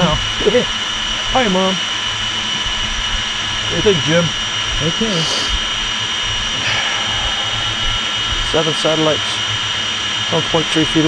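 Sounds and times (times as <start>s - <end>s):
drone motors whining at idle: 0.0s - 11.0s.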